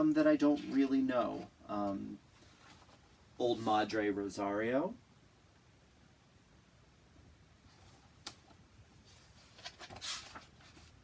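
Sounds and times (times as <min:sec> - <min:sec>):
book pages rustling: 0:02.4 - 0:03.2, 0:07.7 - 0:11.0.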